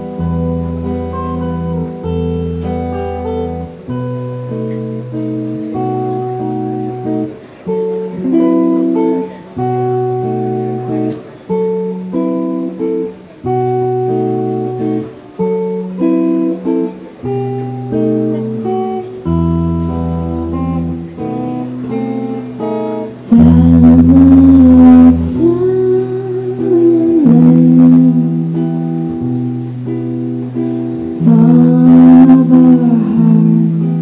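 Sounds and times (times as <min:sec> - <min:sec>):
clean electric guitar chords: 0:00.0 - 0:34.0
woman singing: 0:23.0 - 0:28.7, 0:31.0 - 0:34.0.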